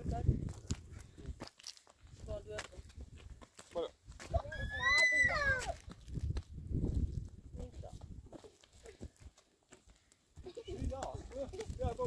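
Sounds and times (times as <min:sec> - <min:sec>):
footsteps on stony ground: 0:00.0 - 0:12.0.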